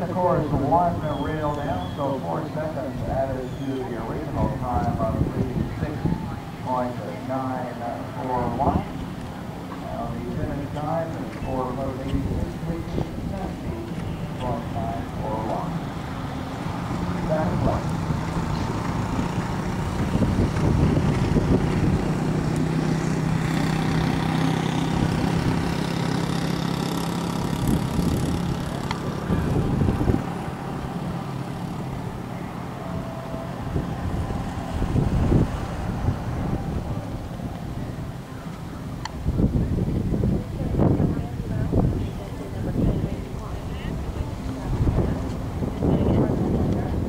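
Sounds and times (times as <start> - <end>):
engine hum: 0.0 - 47.0
faint voices: 0.0 - 47.0
outdoor rumble: 0.0 - 47.0.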